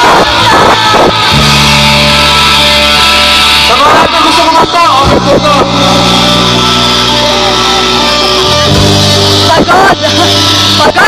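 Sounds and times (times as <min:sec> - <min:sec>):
live rock band: 0:00.0 - 0:11.0
person singing or shouting: 0:00.0 - 0:11.0.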